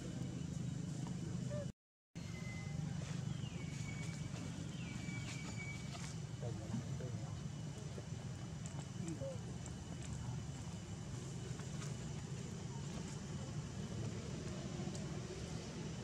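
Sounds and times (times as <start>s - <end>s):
low background rumble: 0.0s - 16.0s.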